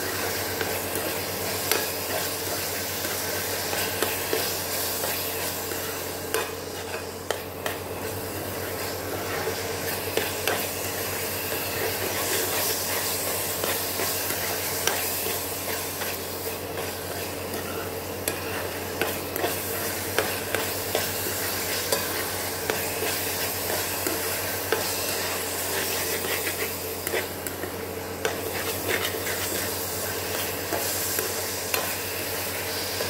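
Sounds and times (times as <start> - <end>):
mixture sizzling in pan: 0.0 - 33.0.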